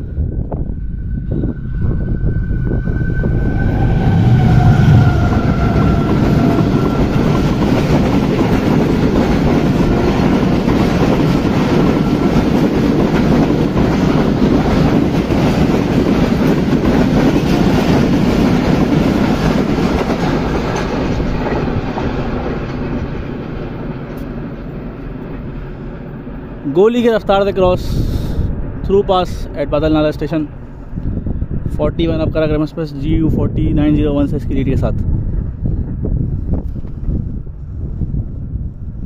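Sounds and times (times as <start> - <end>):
train wheels clattering on rails: 4.0 - 26.1.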